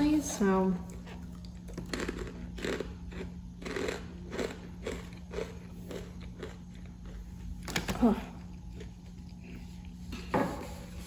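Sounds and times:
person chewing crunchy snacks: 0.9s - 10.1s.

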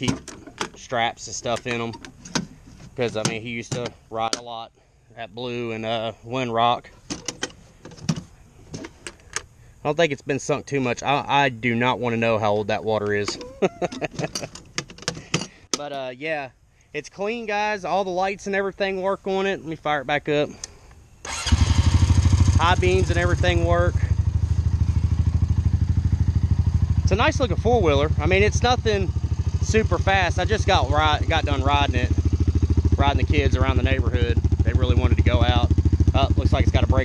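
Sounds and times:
metal latch clicks and clanks: 0.0s - 0.8s, 1.5s - 2.5s, 7.0s - 9.5s, 13.1s - 16.0s
four-wheeler engine idling: 21.3s - 37.0s.

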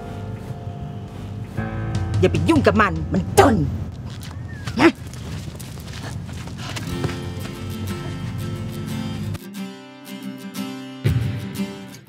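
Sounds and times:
sharp vocal yelp: 4.5s - 5.0s.

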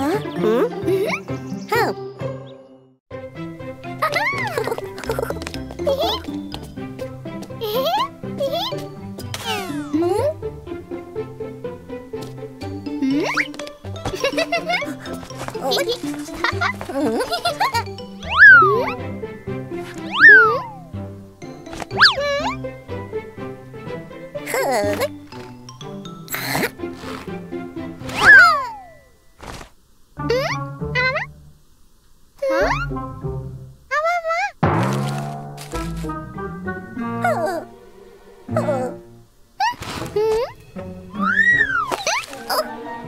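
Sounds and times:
upbeat children's music: 3.1s - 28.8s
cartoon boing sound effect: 18.3s - 19.0s, 20.1s - 20.9s, 22.0s - 22.6s, 28.2s - 29.0s, 32.5s - 33.0s
cartoon character whimpering cries: 28.2s - 29.0s.

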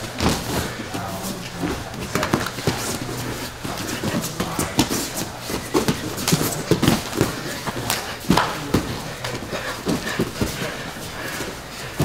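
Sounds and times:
bare feet stamping on mats: 0.0s - 12.0s
bodies scuffling: 0.0s - 12.0s.

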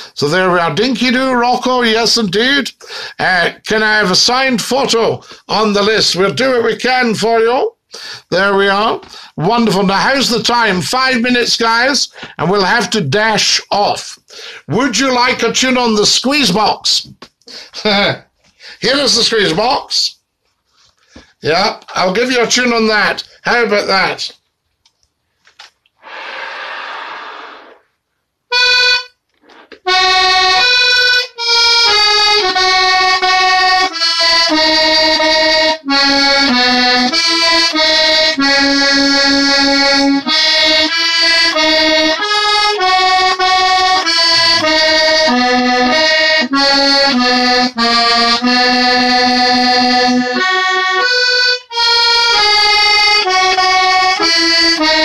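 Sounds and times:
short hiss: 26.0s - 27.9s
button accordion tune: 28.5s - 55.0s.

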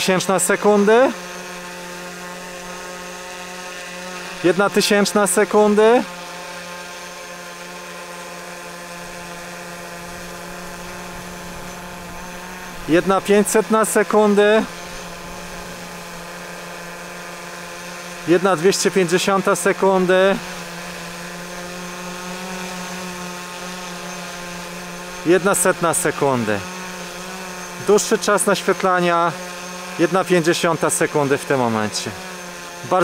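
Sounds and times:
drone propellers whining: 0.0s - 33.0s.

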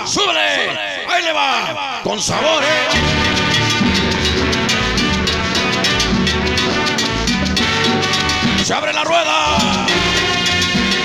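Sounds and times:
loud dance music with drums: 2.9s - 11.0s.

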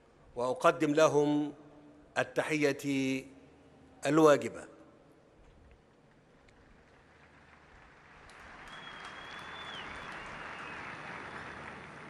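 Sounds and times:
audience applauding: 6.6s - 12.0s.

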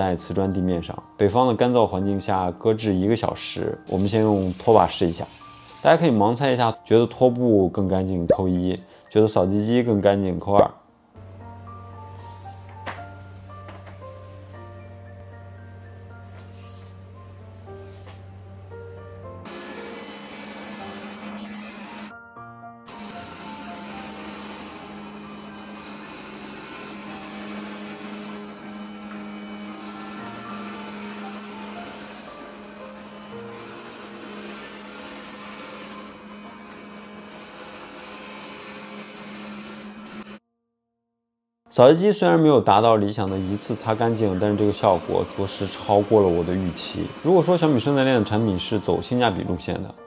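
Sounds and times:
background music: 0.0s - 40.4s, 41.7s - 50.0s
robot vacuum motor whirring: 3.9s - 6.0s, 19.5s - 22.1s, 22.9s - 40.4s, 42.8s - 49.0s.

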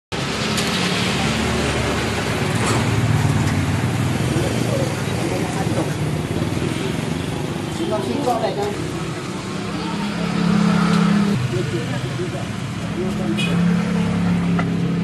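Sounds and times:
passing traffic: 0.1s - 15.0s.

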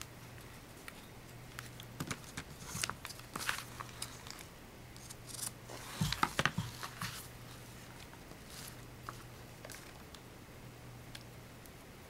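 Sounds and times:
paper rustling: 1.5s - 10.0s.

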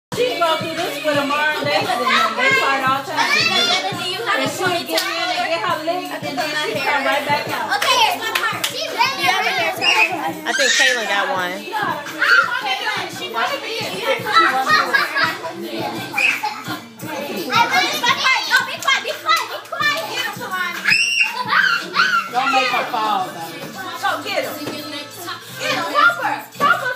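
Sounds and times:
background music with steady beat: 0.1s - 26.9s
children shouting and laughing: 0.2s - 26.9s
children shouting while playing: 8.8s - 11.2s, 20.8s - 22.9s.

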